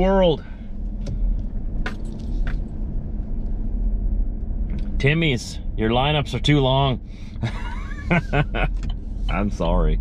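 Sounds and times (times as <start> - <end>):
truck engine rumbling: 0.0 - 10.0.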